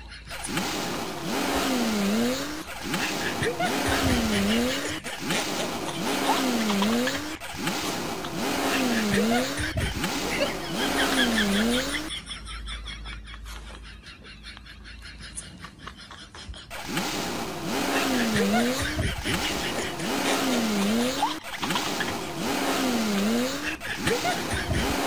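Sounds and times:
busy noisy layer: 0.3s - 12.2s, 16.7s - 25.0s.

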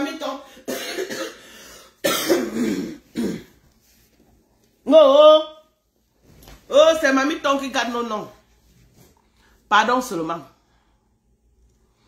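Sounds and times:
woman clearing her throat: 0.6s - 1.4s, 2.0s - 3.6s.

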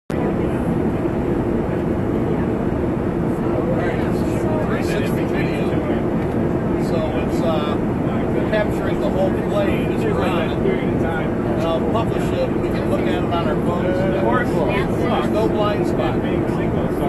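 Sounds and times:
airliner cabin noise: 0.1s - 17.0s
passengers murmuring: 0.1s - 17.0s.

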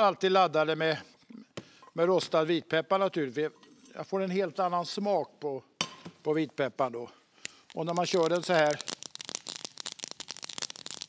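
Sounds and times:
peppercorns crushed in mortar: 7.7s - 11.0s.

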